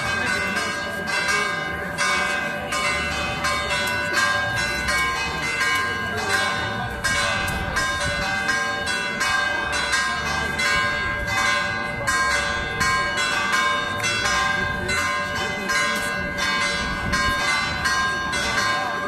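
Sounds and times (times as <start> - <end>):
church bells pealing: 0.0 - 19.0.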